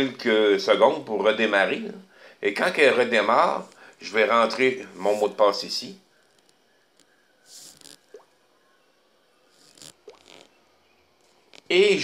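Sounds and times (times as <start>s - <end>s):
faint breaths: 2.0s - 2.5s, 3.6s - 4.1s, 6.0s - 10.0s
wet mouth clicks: 9.7s - 10.5s.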